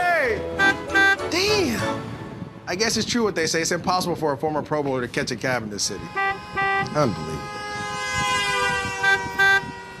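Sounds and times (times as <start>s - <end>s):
street traffic: 0.0s - 10.0s
short car horn honks: 0.6s - 1.3s, 6.0s - 10.0s
car horn held note: 6.0s - 10.0s.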